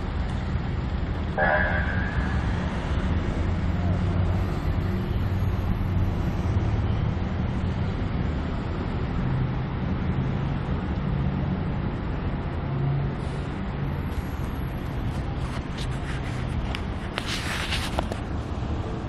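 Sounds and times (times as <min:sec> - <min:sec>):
city traffic noise: 0:00.0 - 0:19.0.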